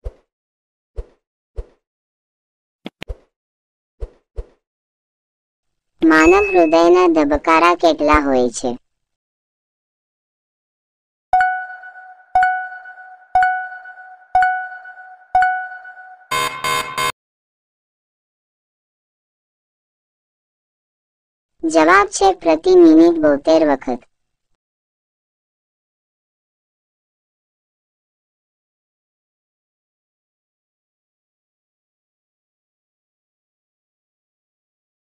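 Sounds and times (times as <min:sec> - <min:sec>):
pop sound effects: 0:02.8 - 0:03.3
countdown tick ringing: 0:11.4 - 0:17.1
time-up buzzer: 0:15.8 - 0:17.2.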